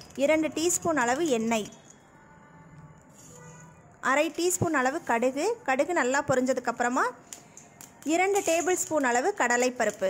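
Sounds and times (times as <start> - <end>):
woman speaking: 4.0 - 7.2.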